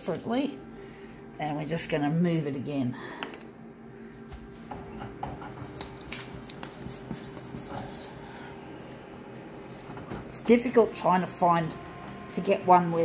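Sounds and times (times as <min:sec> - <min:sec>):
photocopier humming: 0:00.0 - 0:13.0.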